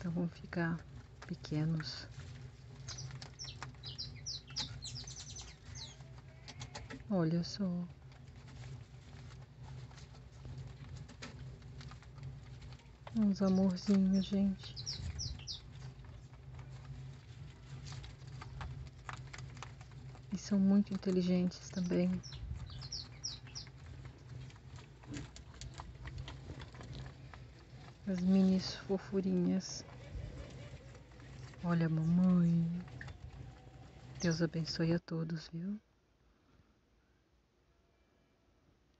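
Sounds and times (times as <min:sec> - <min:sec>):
rabbits nibbling grass: 0:00.0 - 0:34.9
low steady hum: 0:00.0 - 0:38.9
bird chirping: 0:02.8 - 0:06.1, 0:13.2 - 0:16.3, 0:20.3 - 0:24.4.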